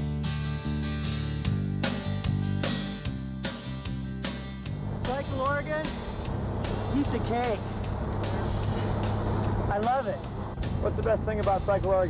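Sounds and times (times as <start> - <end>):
background music: 0.0 - 12.0
motor vehicle running: 4.3 - 12.0.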